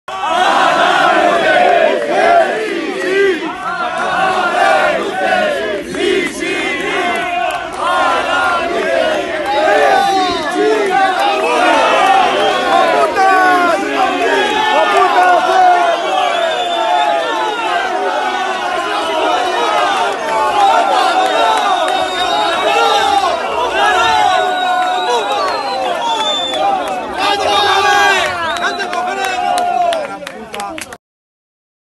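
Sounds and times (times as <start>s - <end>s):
crowd shouting: 0.1s - 30.5s.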